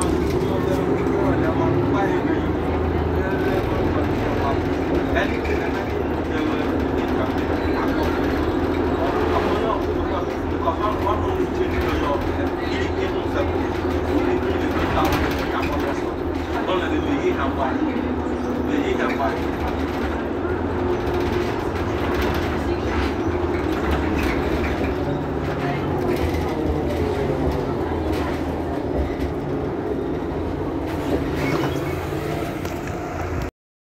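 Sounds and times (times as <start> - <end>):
bus engine idling: 0.0 - 33.5.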